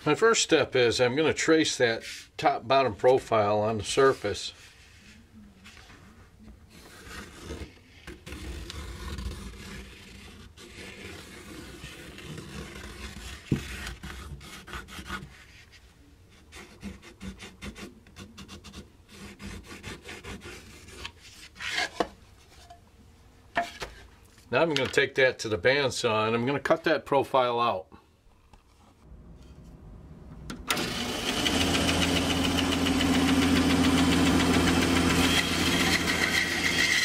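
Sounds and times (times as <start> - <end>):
pencil scratching on wood: 6.7 - 22.0.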